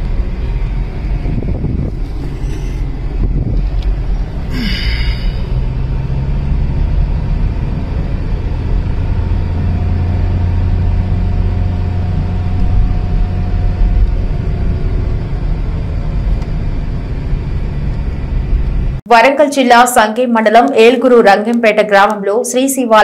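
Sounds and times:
car engine and road noise: 0.0s - 19.1s.

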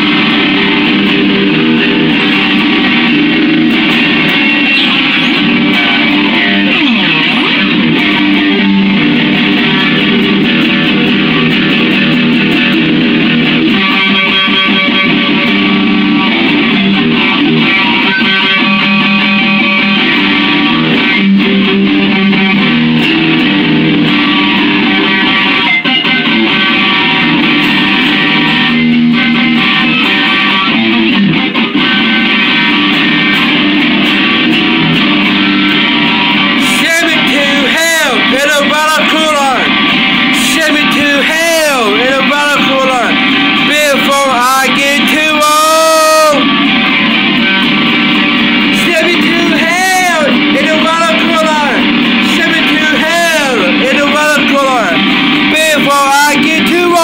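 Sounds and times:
electric guitar strummed loudly: 0.0s - 57.0s.

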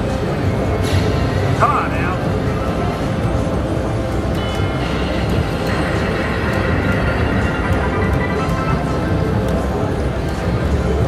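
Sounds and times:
slot machine music and reel sounds: 3.2s - 11.0s
low rumble: 4.9s - 10.2s.

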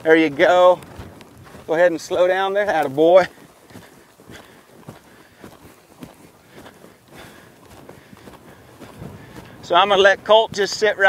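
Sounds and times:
hoof thuds on soft dirt: 0.0s - 11.0s.

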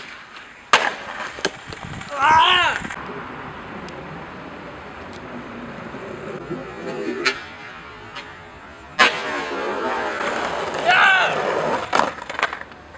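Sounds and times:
skateboard clacking on concrete: 0.0s - 3.0s, 9.0s - 12.9s
skateboard wheels rolling: 0.0s - 12.9s
traffic hum: 0.0s - 12.9s.

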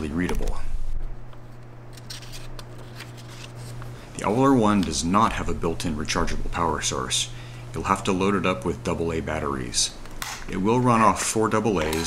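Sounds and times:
low steady hum: 0.0s - 12.0s
paper crackles: 1.9s - 4.9s
paper pages rustling: 1.9s - 5.0s.

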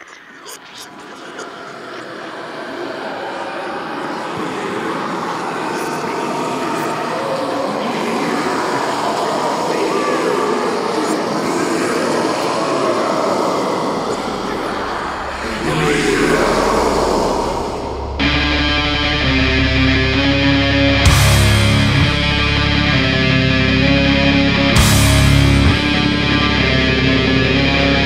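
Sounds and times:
metal music noise wash: 3.9s - 28.0s.

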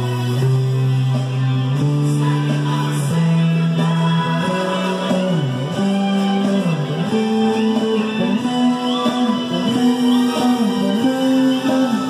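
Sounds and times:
electric bass held low notes: 0.0s - 12.0s.

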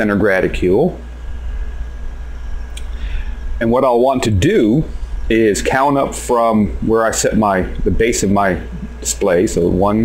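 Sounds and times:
low hum of room noise: 0.0s - 10.0s.

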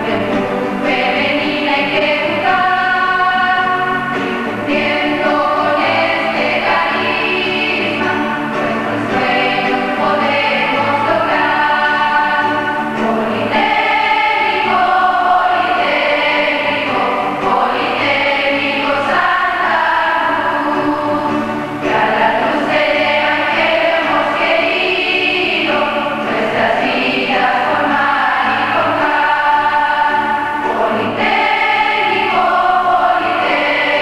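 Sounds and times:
choir of girls singing a hymn: 0.0s - 34.0s.

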